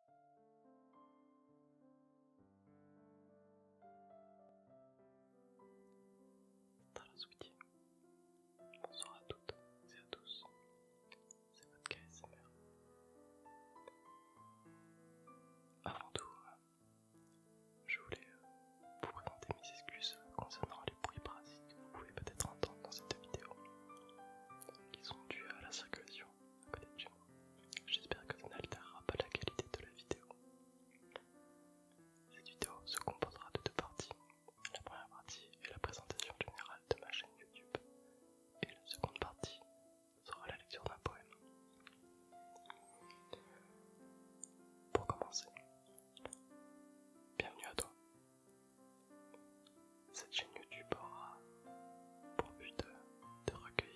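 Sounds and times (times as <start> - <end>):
soft music of held notes: 0.0 - 53.9
close whispering: 7.0 - 7.6, 8.8 - 10.5, 11.6 - 12.4, 15.8 - 16.6, 17.9 - 18.4, 19.0 - 23.6, 24.6 - 30.4, 32.3 - 37.8, 38.6 - 39.6, 40.2 - 41.4, 45.0 - 45.6, 47.4 - 48.0, 50.2 - 51.4, 52.4 - 53.9.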